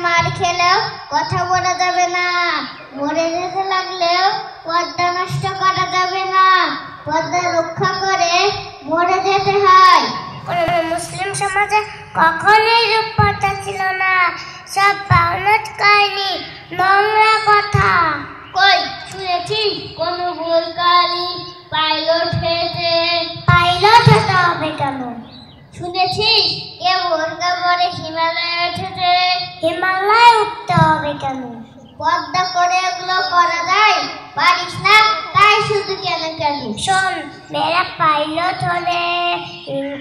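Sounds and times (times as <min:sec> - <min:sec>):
child chanting into a microphone: 0:00.0 - 0:40.0
girl chanting in sing-song voice: 0:09.1 - 0:25.3.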